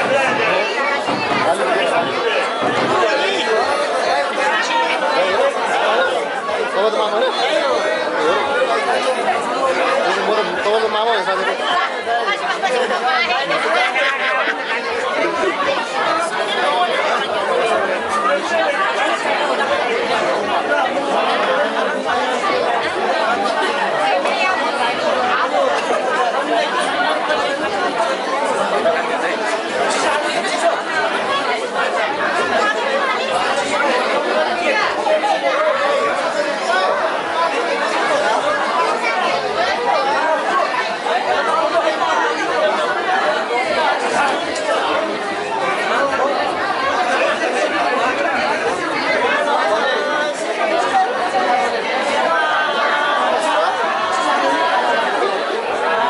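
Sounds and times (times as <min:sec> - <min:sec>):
crowd chatter: 0:00.0 - 0:56.0.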